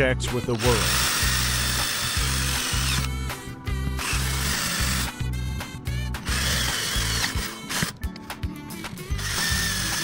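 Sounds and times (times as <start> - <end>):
background music with steady beat: 0.0 - 10.0
cordless drill boring metal tube: 0.6 - 3.4, 4.0 - 5.2, 6.2 - 8.0, 9.2 - 10.0.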